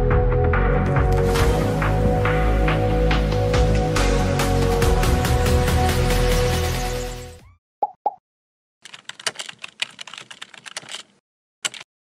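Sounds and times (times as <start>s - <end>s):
background music: 0.0s - 7.4s
pop sound effects: 7.8s - 8.2s
keyboard typing sound effects: 8.8s - 11.9s.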